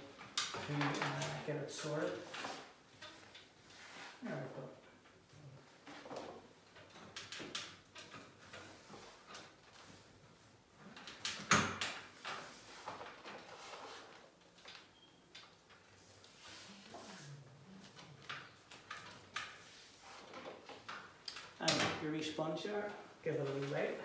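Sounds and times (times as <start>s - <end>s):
wallpaper rustling against wall: 0.0s - 24.0s.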